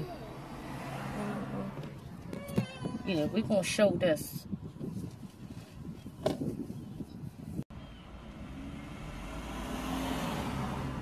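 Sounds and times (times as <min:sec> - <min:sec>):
car passing by: 0:00.1 - 0:02.0, 0:08.1 - 0:11.0.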